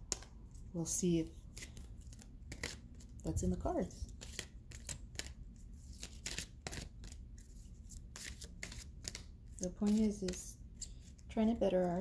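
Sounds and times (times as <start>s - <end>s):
cards being shuffled: 1.5s - 3.2s, 4.1s - 11.1s.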